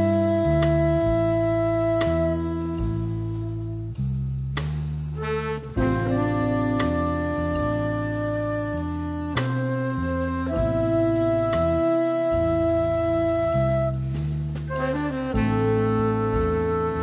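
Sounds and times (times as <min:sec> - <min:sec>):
bass line: 0:00.0 - 0:17.0
jazz melody: 0:00.0 - 0:17.0.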